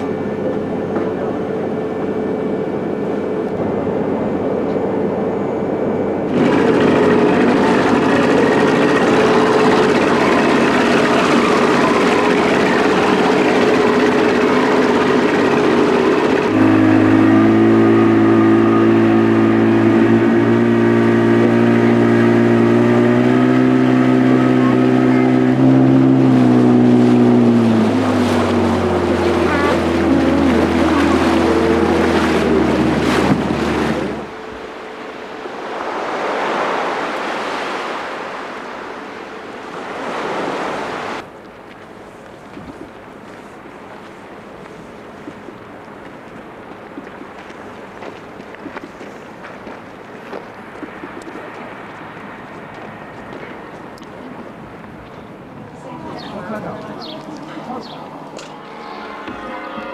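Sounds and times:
small boat motor running: 0:00.0 - 0:35.8, 0:36.5 - 0:59.9
ship engine hum: 0:00.0 - 0:59.9.

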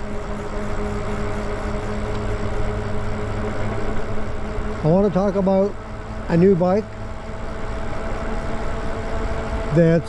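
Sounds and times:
electric motor whine: 0:00.0 - 0:10.0.

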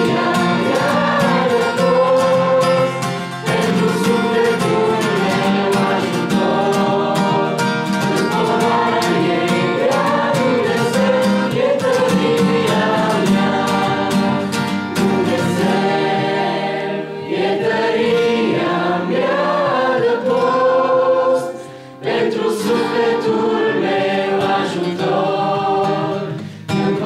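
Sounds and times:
acoustic guitar strumming: 0:00.0 - 0:27.0
group singing in unison: 0:00.0 - 0:27.0.

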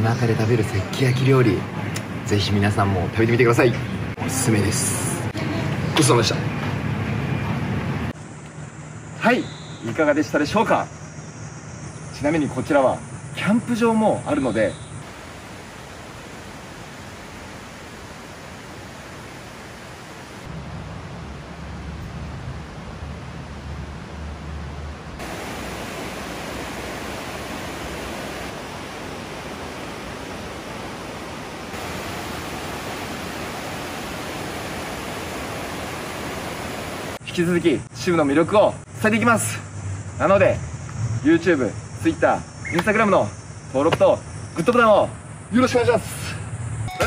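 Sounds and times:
river rushing over rapids: 0:25.2 - 0:37.2.

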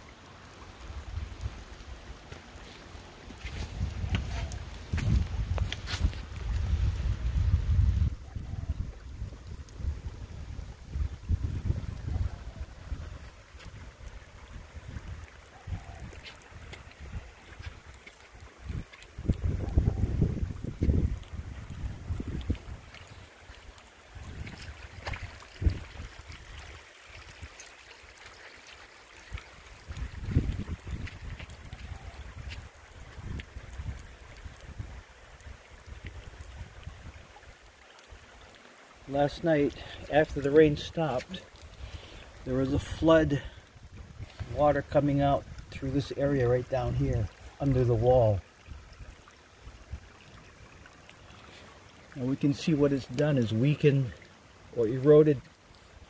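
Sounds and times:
running water: 0:00.0 - 0:56.0
wind buffeting microphone: 0:03.4 - 0:27.4, 0:29.3 - 0:37.3, 0:39.2 - 0:50.2.

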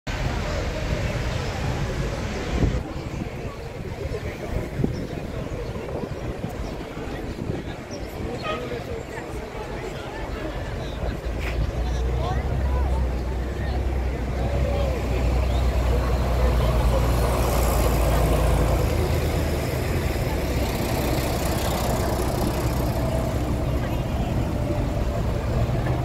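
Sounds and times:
passers-by voices: 0:00.1 - 0:26.0
street noise: 0:00.1 - 0:26.0
vehicle engines idling: 0:00.1 - 0:26.0.

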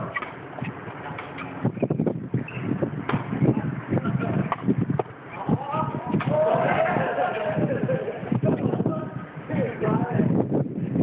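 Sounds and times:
ball kicked with hollow knocks: 0:00.0 - 0:05.3, 0:06.1 - 0:06.4.

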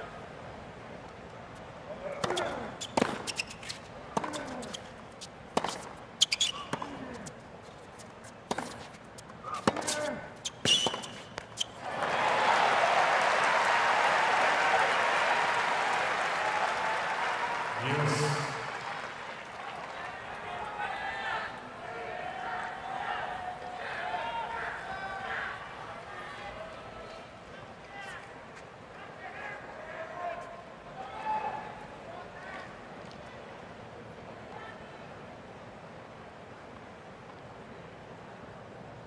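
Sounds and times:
racket striking tennis ball: 0:02.2 - 0:11.8
ball bouncing: 0:04.2 - 0:04.8, 0:08.5 - 0:08.9, 0:09.6 - 0:11.7
crowd cheering and applauding: 0:11.8 - 0:21.1.

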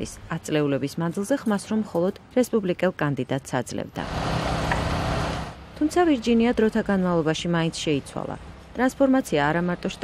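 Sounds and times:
construction machinery engine: 0:04.0 - 0:05.8.

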